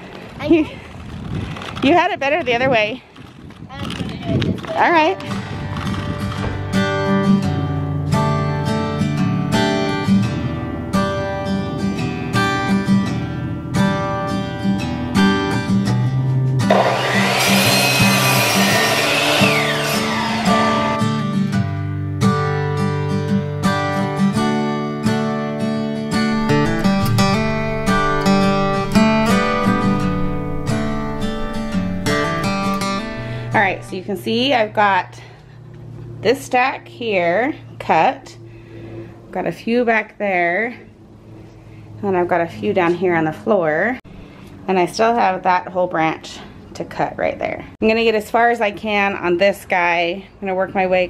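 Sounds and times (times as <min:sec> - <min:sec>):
background music: 0:13.4 - 0:33.9
miter saw cutting branch: 0:16.7 - 0:21.3.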